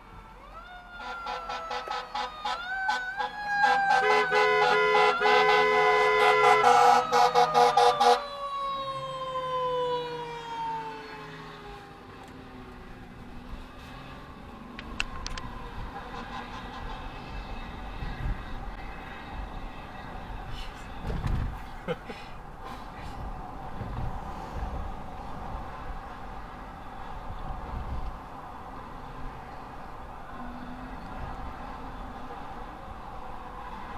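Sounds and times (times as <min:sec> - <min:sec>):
siren wail: 0:00.0 - 0:12.2
low road rumble: 0:00.0 - 0:33.9
emergency vehicle horn blasts: 0:00.9 - 0:08.4, 0:16.0 - 0:17.3.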